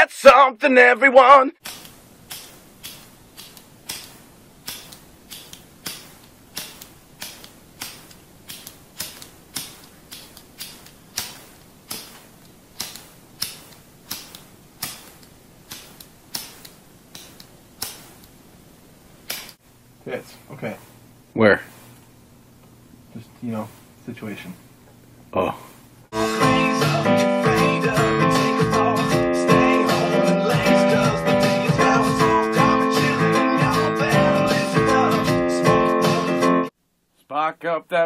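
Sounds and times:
lighter clicking: 0:01.6 - 0:18.4.

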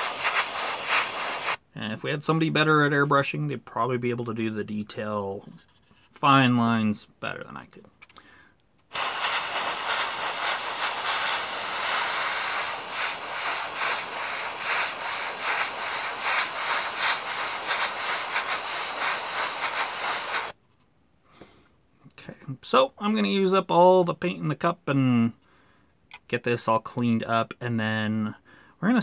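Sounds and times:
airbrush spraying paint: 0:00.0 - 0:01.6, 0:08.9 - 0:20.6.

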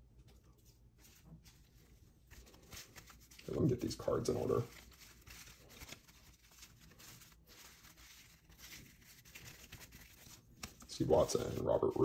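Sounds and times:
cards being shuffled: 0:00.7 - 0:12.0.

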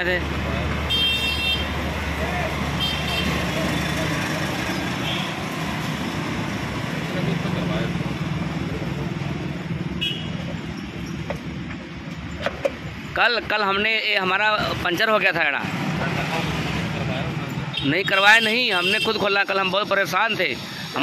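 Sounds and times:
street traffic: 0:00.0 - 0:21.0.

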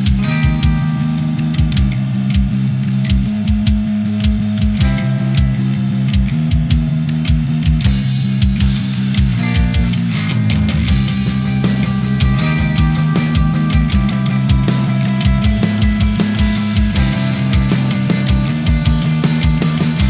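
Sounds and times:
bass guitar: 0:00.0 - 0:20.0
distorted electric guitar riff: 0:00.0 - 0:20.0
steady drum beat: 0:00.0 - 0:20.0.

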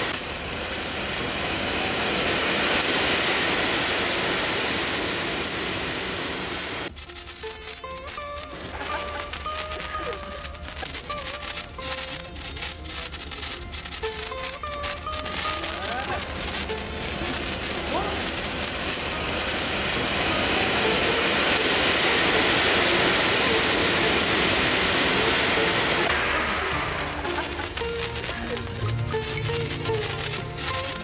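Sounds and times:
fountain firework hissing: 0:00.0 - 0:31.0
gliding tones: 0:00.0 - 0:31.0
sparkler crackling: 0:00.0 - 0:31.0.

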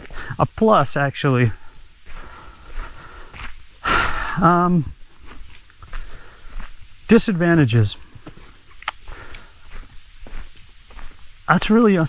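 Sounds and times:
man speaking: 0:00.0 - 0:01.6, 0:04.3 - 0:05.0, 0:07.1 - 0:08.0, 0:11.5 - 0:12.0
faint outdoor background noise: 0:00.0 - 0:12.0
man breathing in: 0:01.6 - 0:04.4, 0:05.9 - 0:06.7, 0:09.0 - 0:09.8.

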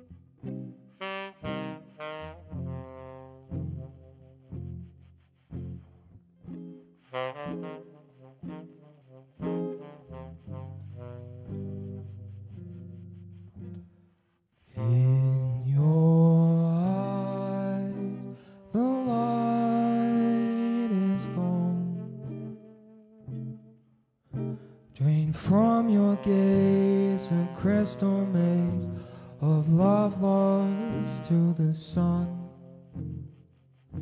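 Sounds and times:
tenor saxophone long notes: 0:00.0 - 0:05.0, 0:07.0 - 0:13.9, 0:14.7 - 0:34.0
guitar picking slow notes: 0:00.0 - 0:14.2, 0:14.8 - 0:34.0.

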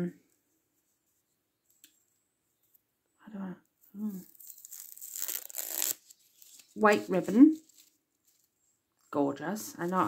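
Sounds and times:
ribbon wrapping crinkling: 0:03.8 - 0:10.0.

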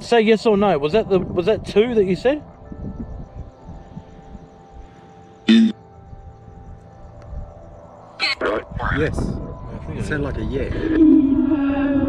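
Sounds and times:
low electronic drone: 0:00.7 - 0:12.0.

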